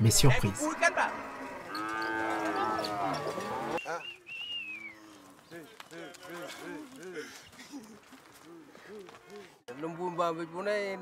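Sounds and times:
cattle mooing: 0:00.2 - 0:03.8.

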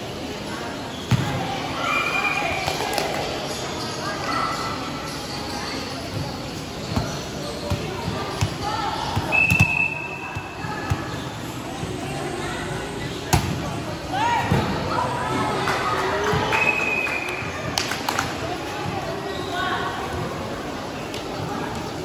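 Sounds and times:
girls calling and shouting: 0:01.4 - 0:06.0, 0:08.0 - 0:17.8.

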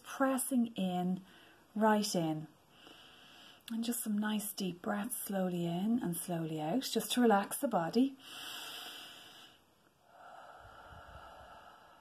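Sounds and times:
person breathing deeply: 0:08.2 - 0:12.0.

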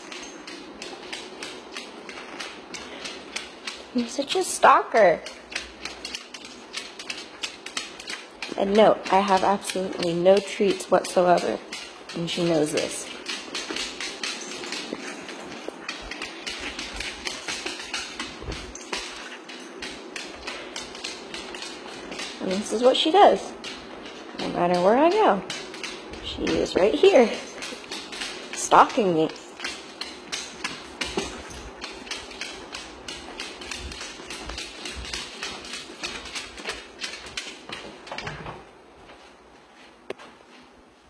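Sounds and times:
dog claws clicking on hardwood: 0:00.0 - 0:38.7
footsteps on hardwood floor: 0:00.0 - 0:41.0.

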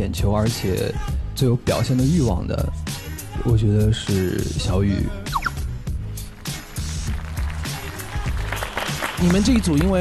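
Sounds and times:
background music with beat and bass: 0:00.0 - 0:10.0
brief rising tone: 0:05.3 - 0:05.6.

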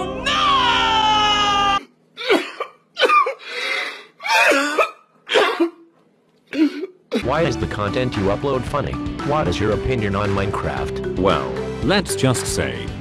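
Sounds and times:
man screaming: 0:00.0 - 0:01.8.

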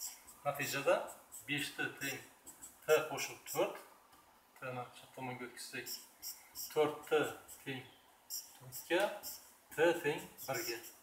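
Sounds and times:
marker squeaking on whiteboard: 0:00.0 - 0:03.7, 0:05.9 - 0:11.0
man speaking: 0:00.5 - 0:02.3, 0:02.9 - 0:03.9, 0:06.7 - 0:07.9, 0:08.6 - 0:11.0.

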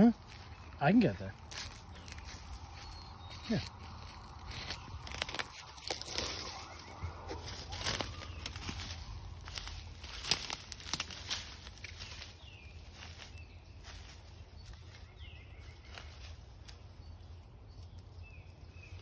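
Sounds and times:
footsteps crunching dry leaves: 0:00.0 - 0:17.4.

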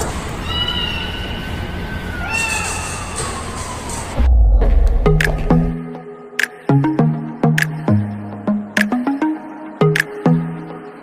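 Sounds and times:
cat meowing: 0:02.1 - 0:03.2
steady low rumble: 0:04.2 - 0:06.2.

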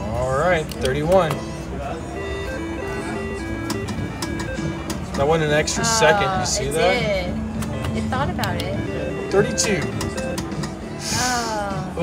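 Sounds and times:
chiming electronic melody: 0:01.4 - 0:07.0, 0:08.8 - 0:10.6
slot machine reels spinning: 0:08.7 - 0:10.8.

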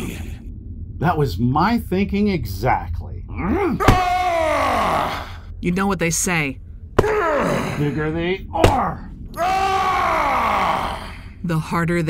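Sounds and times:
person crying out in pain: 0:03.5 - 0:05.4, 0:07.0 - 0:07.9, 0:08.6 - 0:11.2.

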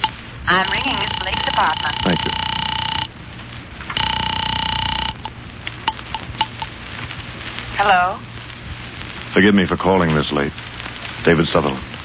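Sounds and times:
telephone ringing: 0:00.0 - 0:03.1, 0:04.0 - 0:06.7.

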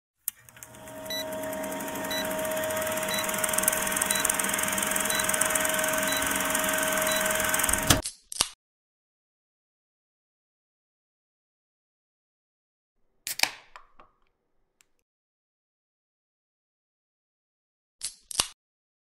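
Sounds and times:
clicks: 0:00.2 - 0:08.0
film projector whirring and clattering: 0:00.3 - 0:08.0.

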